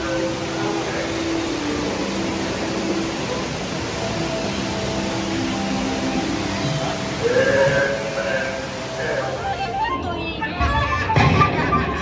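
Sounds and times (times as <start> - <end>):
steady rushing noise: 0.0 - 10.0
faint held music notes: 0.0 - 12.0.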